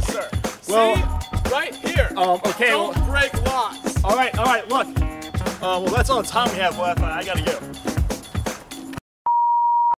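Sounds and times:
background music: 0.0 - 9.0.

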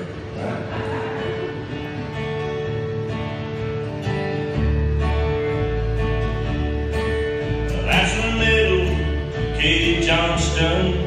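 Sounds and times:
acoustic guitar strumming: 0.0 - 11.0
brighter higher guitar part: 0.0 - 11.0.

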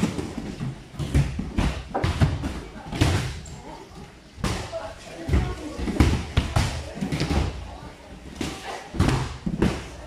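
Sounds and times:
voices in background: 2.2 - 10.0.

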